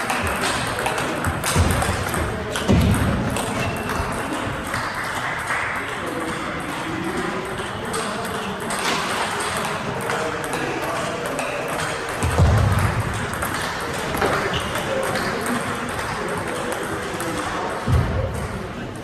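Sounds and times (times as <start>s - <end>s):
table tennis balls clicking: 0.0s - 17.8s
chatter in a hall: 0.0s - 19.0s.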